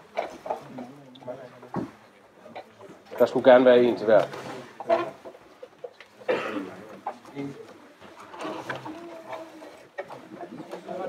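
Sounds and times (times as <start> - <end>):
low murmur of voices: 0.0 - 11.0.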